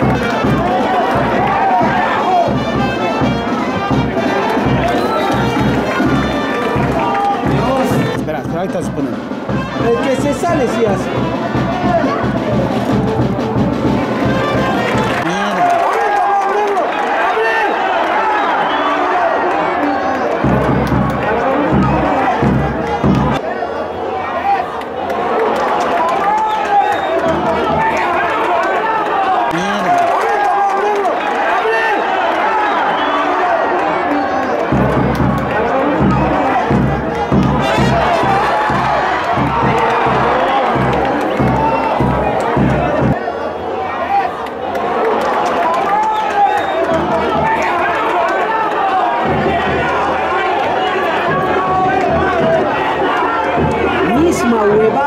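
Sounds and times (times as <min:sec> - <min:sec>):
regular drum beat: 0:00.0 - 0:15.3, 0:20.4 - 0:23.4, 0:34.7 - 0:43.2
many voices chanting: 0:27.2 - 0:46.0, 0:46.6 - 0:54.7.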